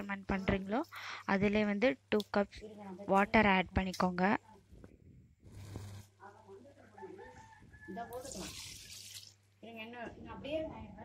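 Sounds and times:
water pouring into pot: 8.2s - 9.4s.

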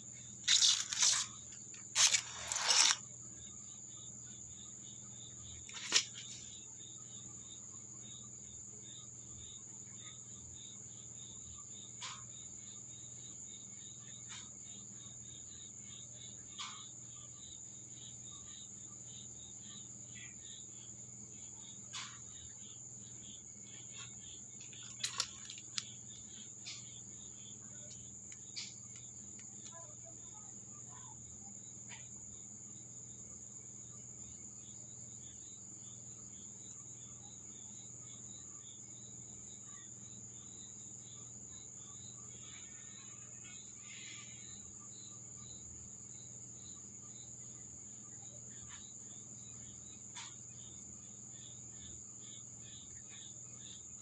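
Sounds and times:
pulsing insect call: 0.0s - 3.5s
crickets chirring: 0.0s - 54.0s.

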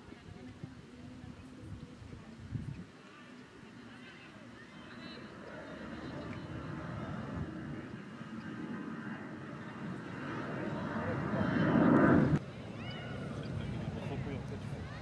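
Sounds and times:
outdoor rushing noise: 4.6s - 15.0s.

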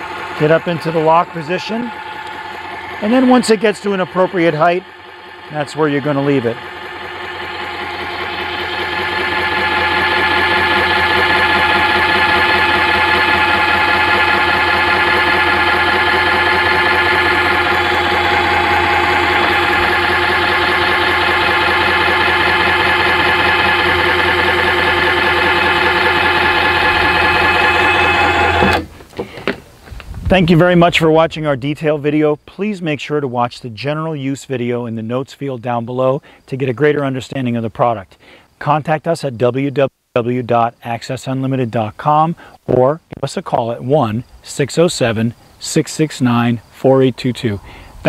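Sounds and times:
electric lift motor whining: 0.0s - 29.2s.

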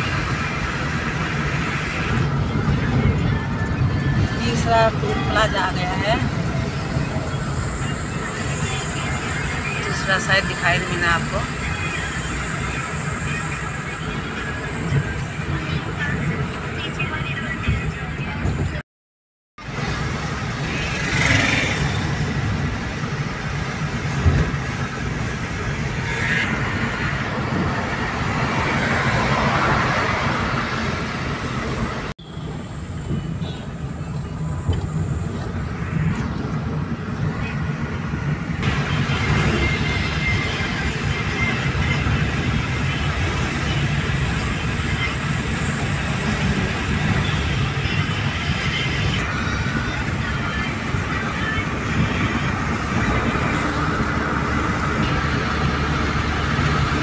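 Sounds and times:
car road noise from inside: 0.0s - 18.8s, 19.7s - 57.0s.

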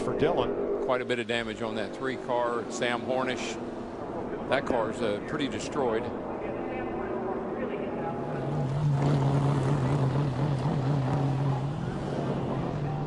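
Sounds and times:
vehicle engine droning: 0.0s - 13.0s.

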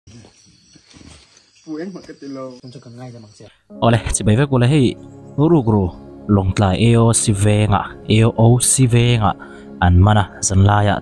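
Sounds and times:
insects chirring at night: 0.1s - 3.7s
person speaking: 3.7s - 11.0s.

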